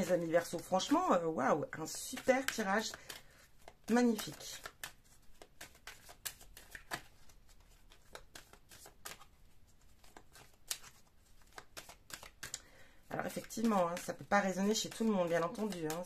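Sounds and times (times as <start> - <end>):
deck of cards shuffling: 0.0 - 16.0.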